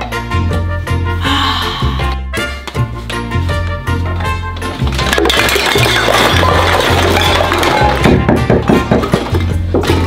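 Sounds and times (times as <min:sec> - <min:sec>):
upbeat background music: 0:00.0 - 0:10.0
cans and bottles clattering on floor: 0:04.1 - 0:10.0.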